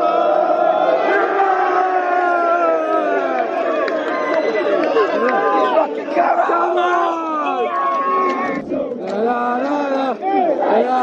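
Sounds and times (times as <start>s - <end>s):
crowd shouting: 0.0s - 11.0s.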